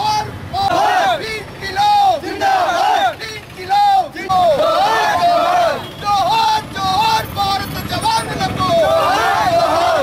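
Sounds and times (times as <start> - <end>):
protesters chanting slogans: 0.1 - 10.0.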